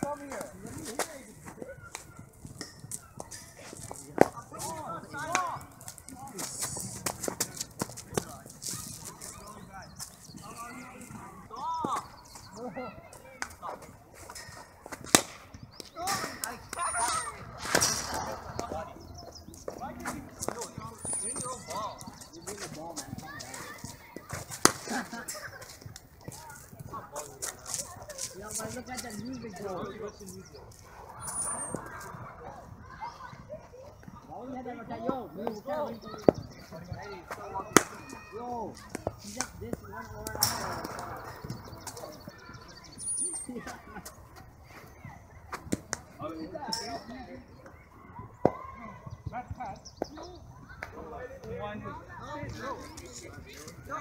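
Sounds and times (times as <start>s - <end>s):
cricket bat striking ball: 15.0s - 15.4s.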